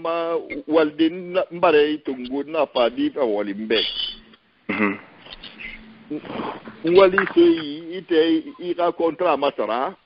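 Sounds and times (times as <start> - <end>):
rough noise: 3.8 - 8.0
man talking over radio line: 6.9 - 9.6.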